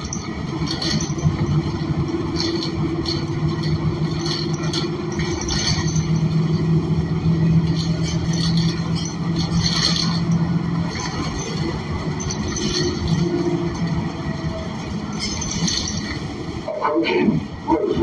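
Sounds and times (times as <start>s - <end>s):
bus engine droning: 0.0s - 18.0s
bus interior rattles: 0.0s - 18.0s.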